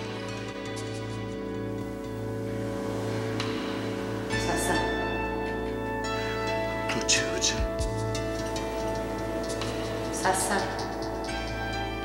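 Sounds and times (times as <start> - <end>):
background music with sustained chords: 0.0 - 12.0.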